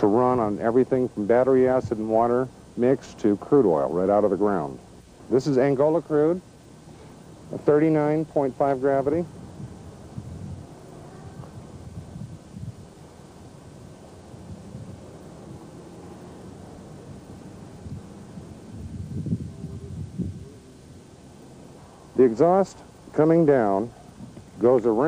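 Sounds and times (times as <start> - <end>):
low outdoor rumble: 0.0 - 25.0
wind buffeting microphone: 9.0 - 20.9, 24.1 - 24.8.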